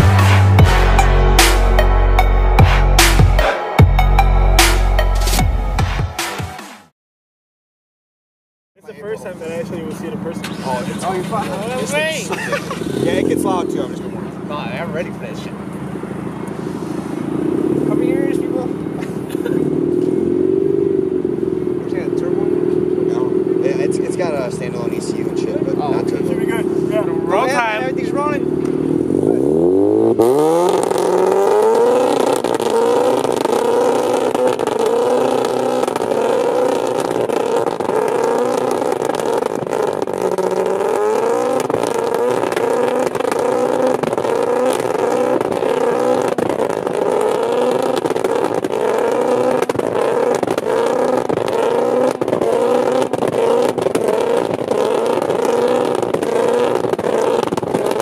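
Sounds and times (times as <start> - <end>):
rotary engine revving: 9.1 - 58.0.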